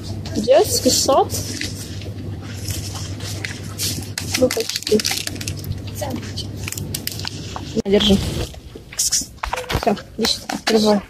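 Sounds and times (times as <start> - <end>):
steady low hum: 0.0 - 11.0
plastic packaging crinkling: 1.3 - 8.7.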